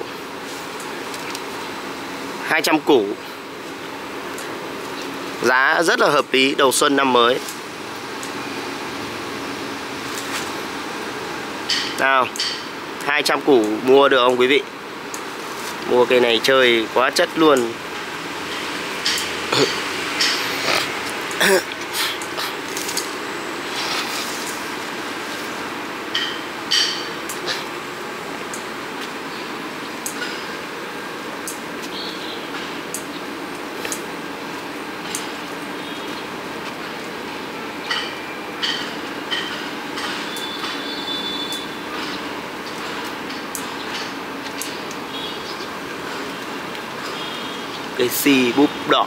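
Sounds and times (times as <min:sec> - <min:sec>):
outdoor background noise: 0:00.0 - 0:49.0
person laughing: 0:21.4 - 0:22.6.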